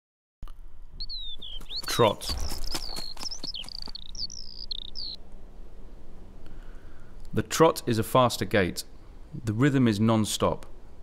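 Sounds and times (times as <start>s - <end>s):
bird whistling descending notes: 1.0s - 5.2s.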